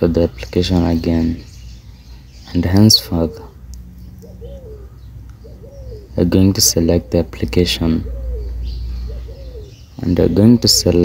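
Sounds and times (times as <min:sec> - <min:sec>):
steady low hum: 0:00.0 - 0:11.0
dove cooing: 0:02.7 - 0:11.0.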